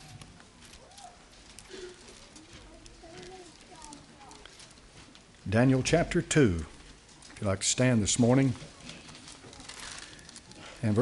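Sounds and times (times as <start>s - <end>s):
low murmuring voices: 0.0s - 11.0s.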